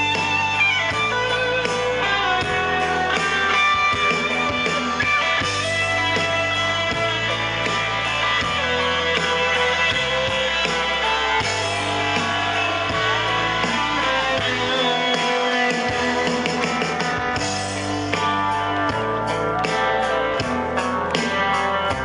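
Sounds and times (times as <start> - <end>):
electric guitar solo: 0.0 - 22.0
rock band playing live: 0.0 - 22.0.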